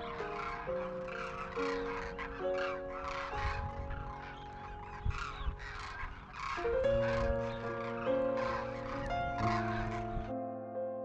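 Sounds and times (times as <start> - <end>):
flock of birds calling: 0.0 - 10.4
slow held chords music: 0.0 - 11.0.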